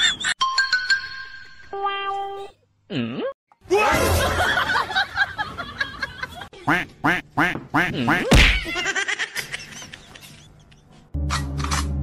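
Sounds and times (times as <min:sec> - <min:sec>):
duck quacking: 0:06.7 - 0:08.3.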